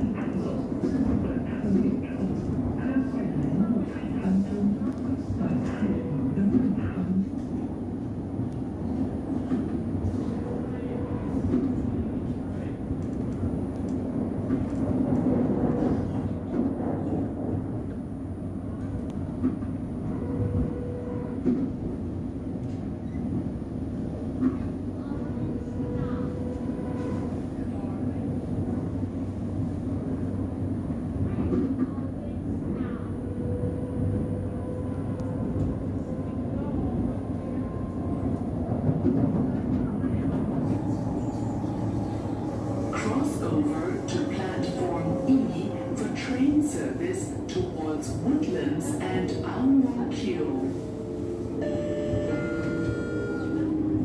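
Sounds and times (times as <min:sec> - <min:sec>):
train rumble: 0:00.0 - 0:54.0
faint train whine: 0:31.2 - 0:54.0.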